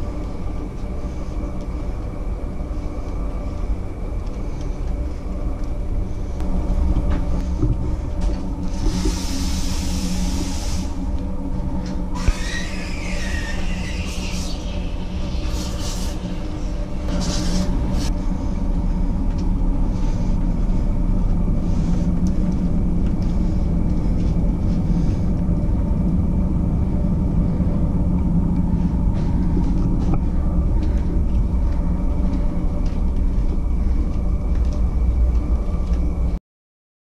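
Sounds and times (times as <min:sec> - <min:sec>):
ship machinery rumble and hum: 0:00.0 - 0:36.4.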